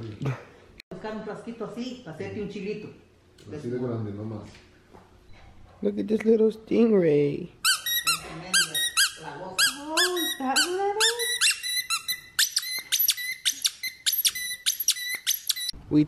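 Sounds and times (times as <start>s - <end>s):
squeaky toy squeaking: 7.6s - 15.8s.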